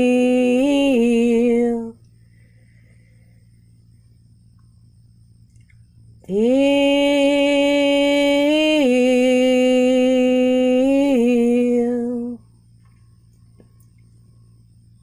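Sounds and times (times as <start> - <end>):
woman singing a long note: 0.0 - 2.0, 6.2 - 12.5.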